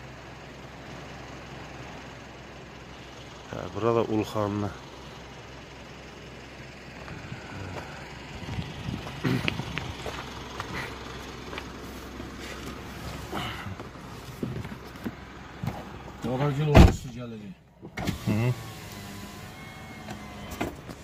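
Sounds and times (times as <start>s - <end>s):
engine and tyre rumble: 0.0s - 21.0s.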